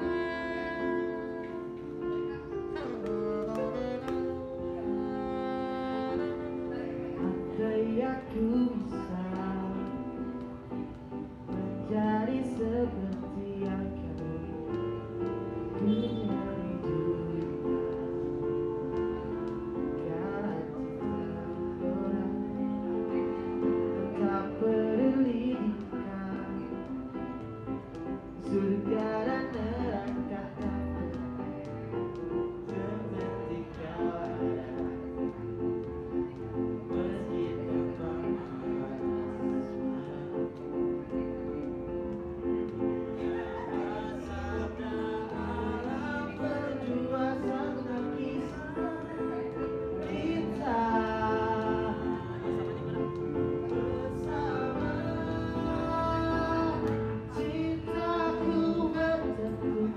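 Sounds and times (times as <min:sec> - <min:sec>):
saxophone melody: 0:00.0 - 0:07.2
electric keyboard: 0:00.0 - 0:59.9
man singing: 0:02.7 - 0:10.4, 0:11.6 - 0:15.2, 0:15.8 - 0:27.0, 0:28.4 - 0:31.6, 0:32.4 - 0:35.4, 0:36.8 - 0:41.0, 0:43.1 - 0:59.9.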